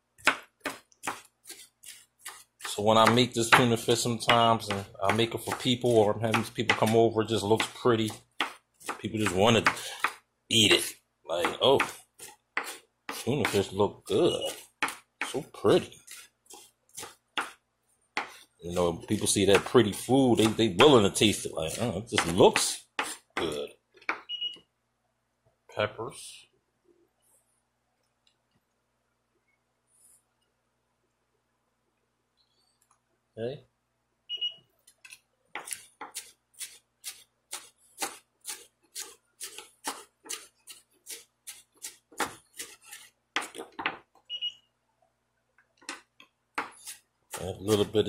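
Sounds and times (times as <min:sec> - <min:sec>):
knife chopping on wooden board: 0:00.2 - 0:10.2, 0:11.4 - 0:13.7, 0:14.5 - 0:15.5, 0:16.1 - 0:17.6, 0:18.2 - 0:18.4, 0:19.2 - 0:21.0, 0:21.7 - 0:24.2, 0:35.6 - 0:44.0, 0:46.6 - 0:48.0.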